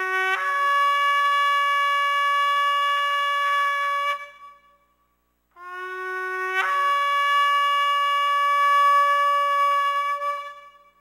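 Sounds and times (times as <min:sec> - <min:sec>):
shofar blast: 0:00.0 - 0:04.9, 0:05.6 - 0:11.0.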